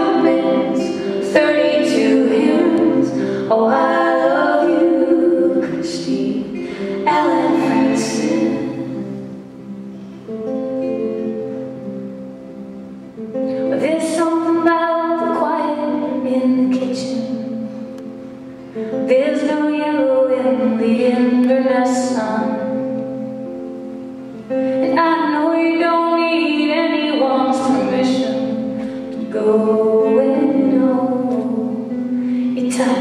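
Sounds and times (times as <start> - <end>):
woman singing: 0.0 - 9.0, 13.6 - 17.9, 18.9 - 23.0, 24.8 - 33.0
acoustic guitars: 0.0 - 33.0.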